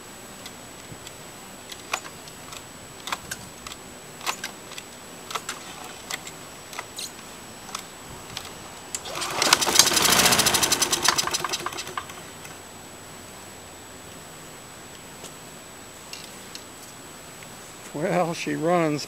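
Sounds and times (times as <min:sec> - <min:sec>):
lawnmower engine firing: 0:08.4 - 0:12.6.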